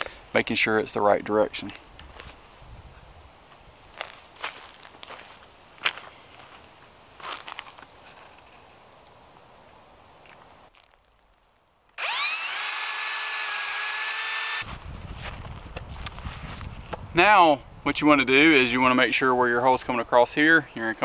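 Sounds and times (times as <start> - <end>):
cordless drill boring wood: 12.0 - 14.6.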